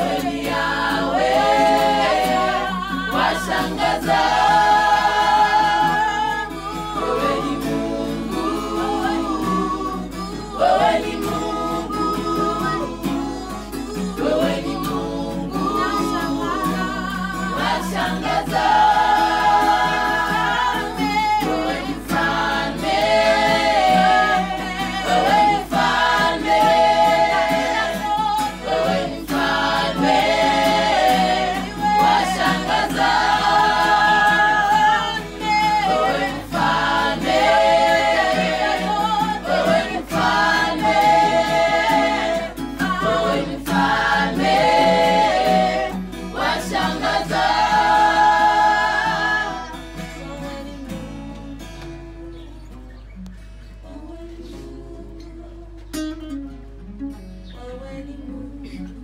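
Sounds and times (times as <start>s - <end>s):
women singing gospel in harmony: 0.0s - 52.4s, 53.8s - 56.1s, 57.5s - 59.0s.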